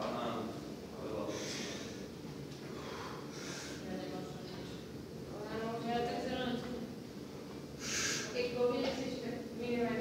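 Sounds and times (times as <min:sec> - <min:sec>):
sharp hissing breath: 0:01.3 - 0:02.0, 0:02.8 - 0:03.8, 0:07.8 - 0:08.4.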